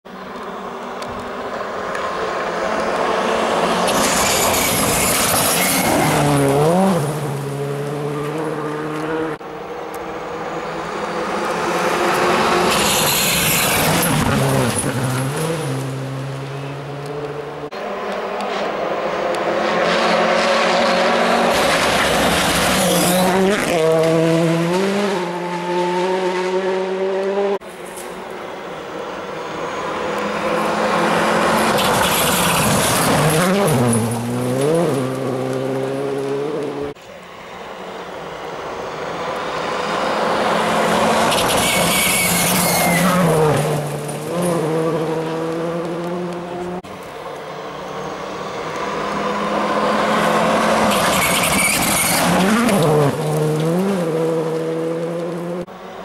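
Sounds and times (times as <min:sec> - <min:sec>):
rally cars passing at full throttle: 0:00.0 - 0:56.0.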